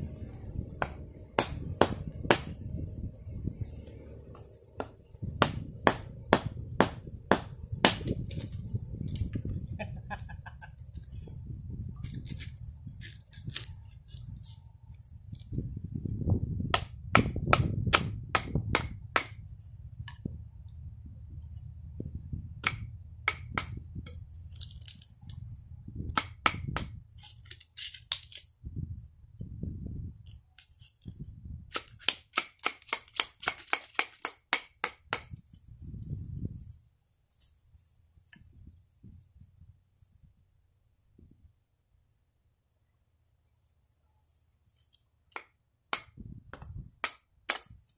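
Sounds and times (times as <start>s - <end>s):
wind rumble on microphone: 0.0s - 27.3s, 28.5s - 32.0s, 35.0s - 37.0s, 37.7s - 41.7s, 46.1s - 47.0s.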